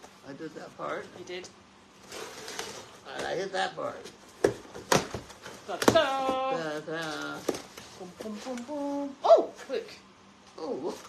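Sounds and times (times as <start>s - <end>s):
cardboard knocks and snaps: 4.4s - 6.5s.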